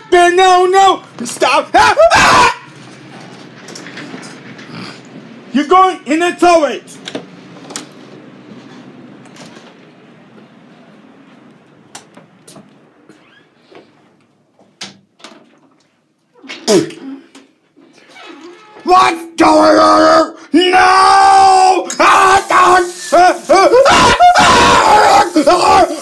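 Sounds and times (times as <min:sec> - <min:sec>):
short loud cry: 0:01.4 - 0:02.8, 0:20.8 - 0:26.0.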